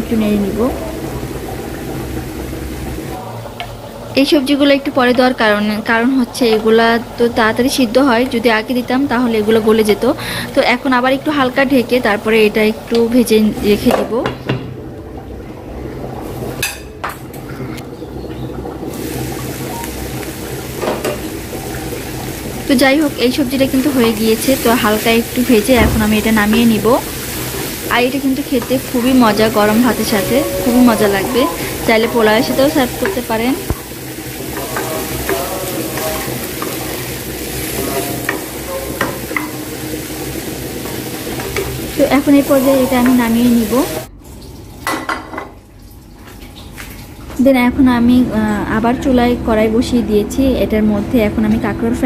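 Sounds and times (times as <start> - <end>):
food sizzling in pan: 0.0 - 14.8, 18.0 - 45.2
spatula tapping and scraping pan: 37.8 - 39.8.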